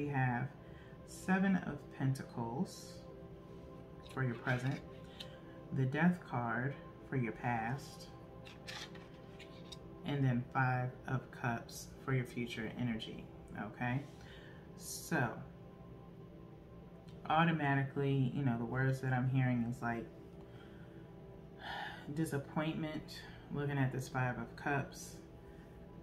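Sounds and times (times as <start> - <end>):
soft background music: 0.0 - 26.0.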